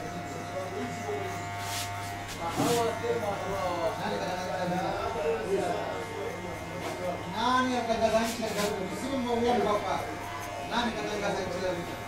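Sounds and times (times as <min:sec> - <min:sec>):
electric hair clippers buzzing: 0:00.0 - 0:12.0.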